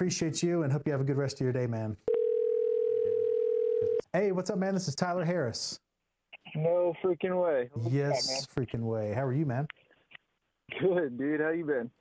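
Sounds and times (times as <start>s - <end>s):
telephone ringback tone: 2.1s - 4.0s.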